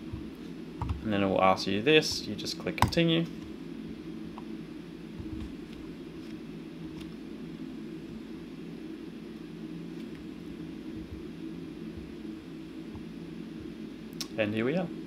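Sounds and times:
low room tone hum: 0.0 - 15.0.

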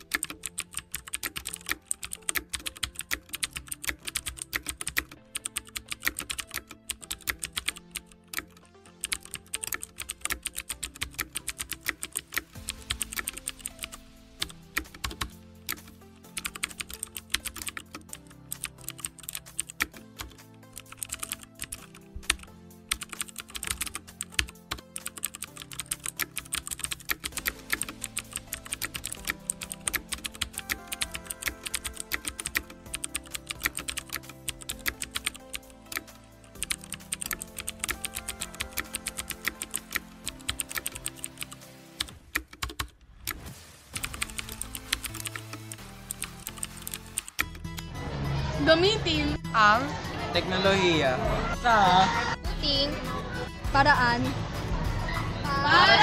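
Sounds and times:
background music of held notes: 0.0 - 42.4, 43.3 - 56.0
on-screen keyboard typing clicks: 0.0 - 47.9.

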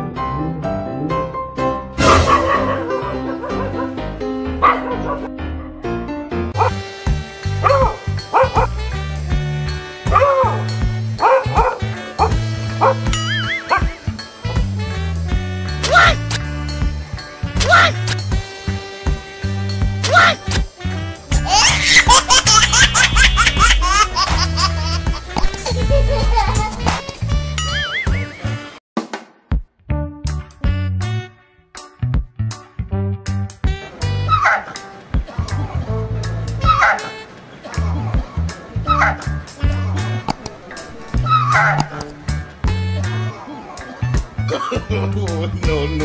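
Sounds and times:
background music: 0.0 - 46.0
dogs barking: 2.0 - 5.4, 6.6 - 6.8, 7.6 - 8.8, 10.0 - 14.0, 34.0 - 40.2, 40.8 - 42.2
high-pitched laughter: 13.2 - 13.8, 21.4 - 28.7.

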